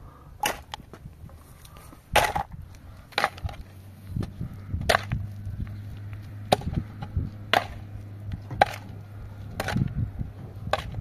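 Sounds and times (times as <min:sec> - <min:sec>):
shovel digging stony earth: 0:00.4 - 0:11.0.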